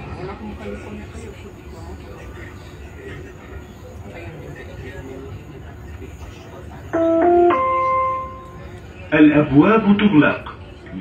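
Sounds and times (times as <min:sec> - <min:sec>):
train carriage hum: 0:00.0 - 0:11.0
three-note electronic chime: 0:07.0 - 0:08.7.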